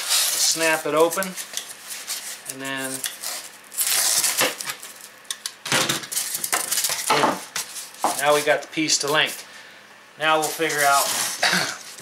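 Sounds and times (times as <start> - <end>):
utility knife cutting foil: 0.0 - 5.1.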